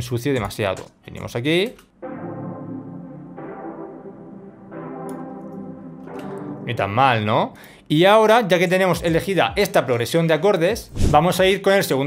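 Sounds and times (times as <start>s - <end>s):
synth pad playing minor chords: 2.0s - 7.6s.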